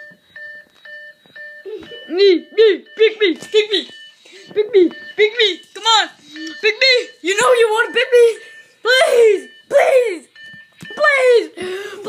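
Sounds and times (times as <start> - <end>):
electronic beeping: 0.0 - 11.8.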